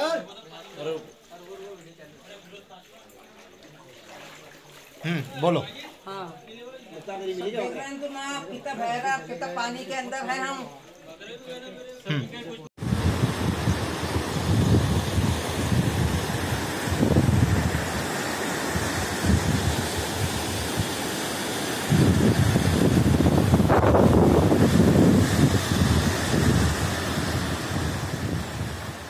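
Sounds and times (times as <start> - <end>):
wind buffeting microphone: 12.8 - 21.2, 21.8 - 29.0
river water rushing: 12.8 - 29.0.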